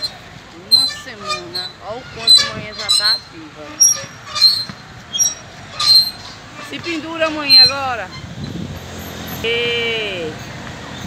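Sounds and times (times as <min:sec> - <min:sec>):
low hum of background traffic: 0:00.0 - 0:11.0.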